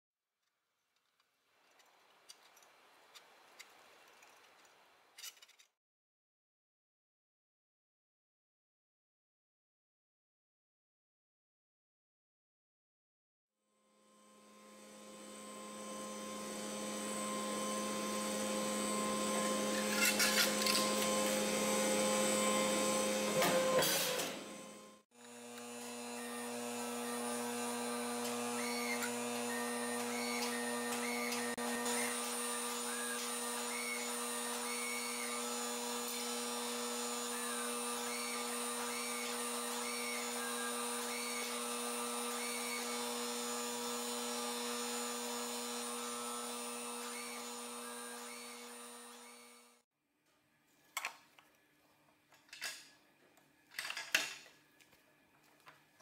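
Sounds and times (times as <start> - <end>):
machine motor humming: 14.4 - 49.7.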